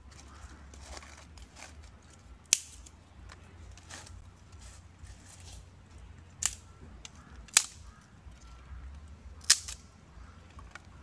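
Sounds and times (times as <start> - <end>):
dry sticks snapping: 0.0 - 11.0.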